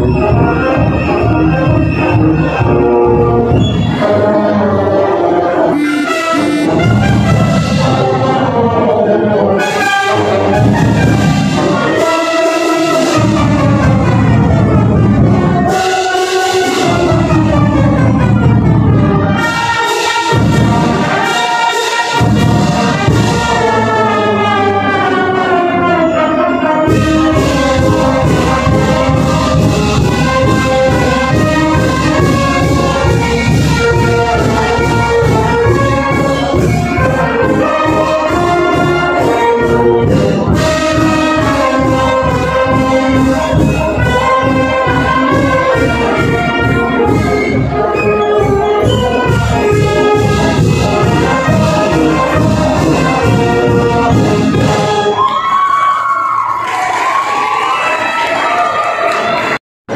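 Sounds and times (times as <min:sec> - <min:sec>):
marching brass band playing: 0:00.0 - 0:59.9
steady drum beat: 0:05.7 - 0:08.4, 0:26.9 - 0:47.4, 0:48.5 - 0:55.1.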